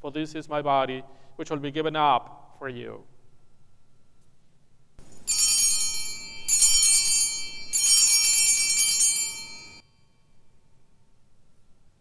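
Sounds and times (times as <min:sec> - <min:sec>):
altar bells jingling: 0:05.0 - 0:10.4.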